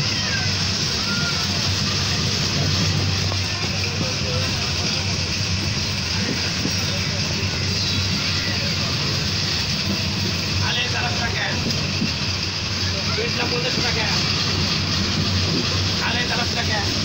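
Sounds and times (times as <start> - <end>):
train running noise: 0.0 - 17.0.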